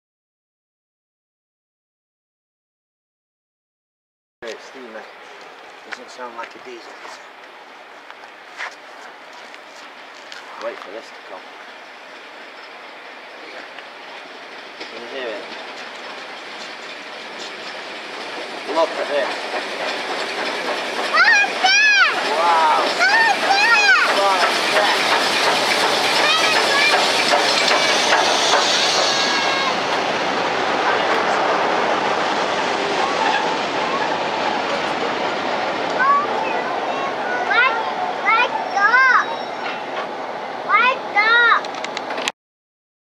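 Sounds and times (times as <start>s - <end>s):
steam train passing: 4.4s - 42.3s
wheels clattering on rail: 4.5s - 40.8s
high calling voices: 19.3s - 34.7s.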